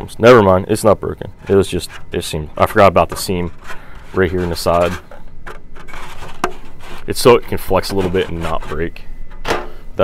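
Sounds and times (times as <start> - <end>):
plastic part rubbing in hands: 1.3 - 9.0.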